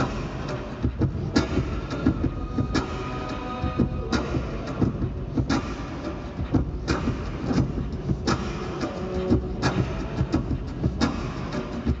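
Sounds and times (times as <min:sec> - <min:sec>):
beatboxed percussion loop: 0:00.0 - 0:12.0.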